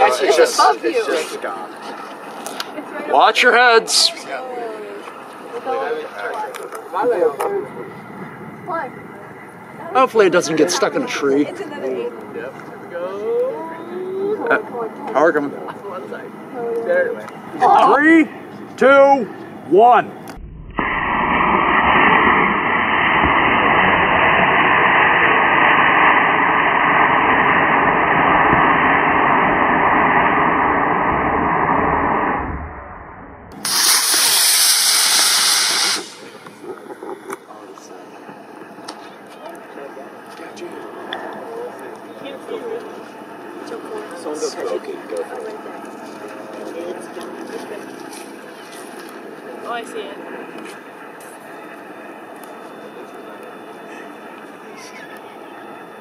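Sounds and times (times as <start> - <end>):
model rocket motor rushing: 33.5 - 36.8.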